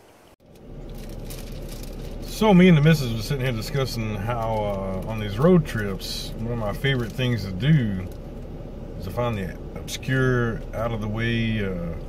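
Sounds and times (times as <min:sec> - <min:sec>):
faint outdoor ambience: 0:00.0 - 0:12.0
car cabin hum and hiss: 0:00.1 - 0:12.0.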